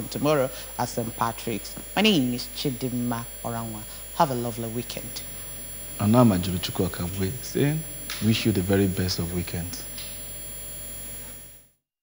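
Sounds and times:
high electronic whine: 0:00.0 - 0:11.7
low mains hum: 0:00.0 - 0:11.8.

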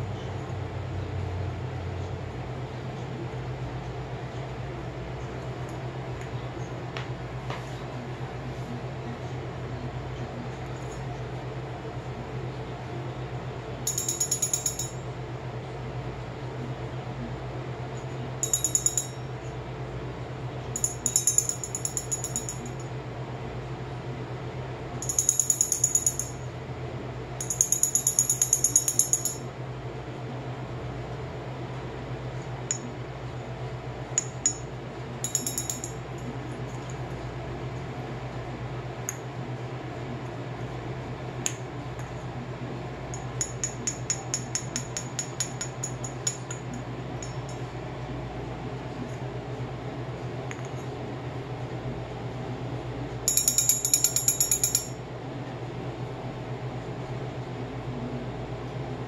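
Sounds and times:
small metal handbell ringing: 0:13.8 - 0:15.0, 0:18.4 - 0:19.2, 0:20.8 - 0:22.8, 0:25.0 - 0:26.4, 0:27.4 - 0:29.5, 0:35.2 - 0:36.0, 0:53.3 - 0:55.0
small metal bell rung rapidly: 0:13.9 - 0:15.0, 0:18.4 - 0:19.3, 0:20.8 - 0:22.8, 0:25.0 - 0:26.4, 0:27.4 - 0:29.5, 0:35.2 - 0:36.0, 0:53.3 - 0:55.0.

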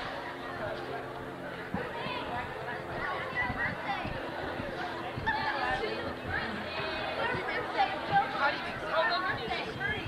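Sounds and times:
several voices chattering: 0:00.0 - 0:10.0.

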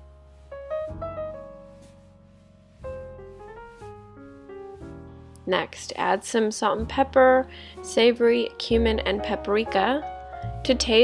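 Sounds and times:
piano music: 0:00.0 - 0:11.0.

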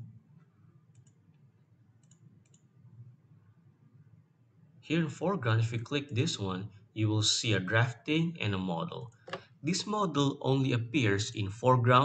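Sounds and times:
faint computer mouse clicks: 0:00.9 - 0:01.2, 0:02.0 - 0:02.7.

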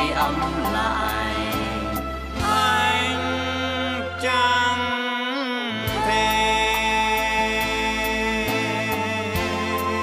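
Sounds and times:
steady bass: 0:00.0 - 0:10.0.

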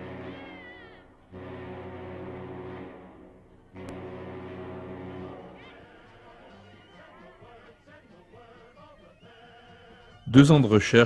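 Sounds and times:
high wavering falling cry: 0:00.0 - 0:01.1
deep ship's horn blasts: 0:00.0 - 0:06.0.

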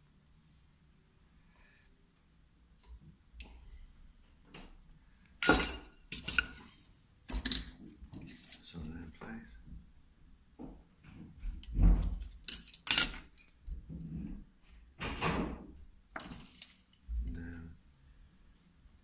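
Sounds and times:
bench handling noises: 0:05.4 - 0:06.7.

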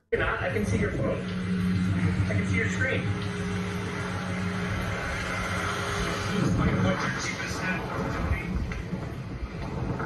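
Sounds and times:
vehicles idling: 0:00.2 - 0:10.0.

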